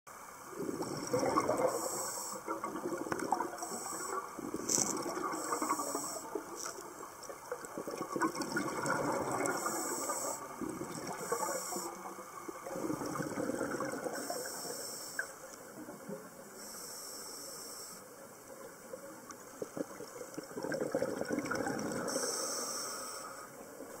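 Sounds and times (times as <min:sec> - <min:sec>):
exhaled bubbles gushing: 0:00.5 - 0:14.5, 0:19.4 - 0:22.2
regulator inhale hiss: 0:00.8 - 0:02.5, 0:03.6 - 0:06.7, 0:09.5 - 0:10.6, 0:11.2 - 0:12.1, 0:14.2 - 0:15.5, 0:16.6 - 0:18.2, 0:22.0 - 0:23.6.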